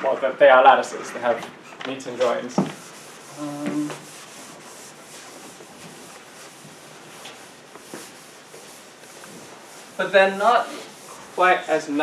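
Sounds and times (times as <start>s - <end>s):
eraser rubbing on chalkboard: 2.1s - 12.0s.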